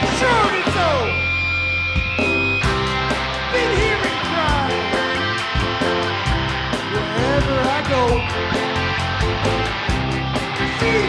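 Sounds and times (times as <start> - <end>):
drum kit: 0.0 - 11.0
electric and acoustic guitars: 0.0 - 11.0
electric bass: 0.0 - 11.0
person singing: 3.5 - 5.1, 10.6 - 11.0.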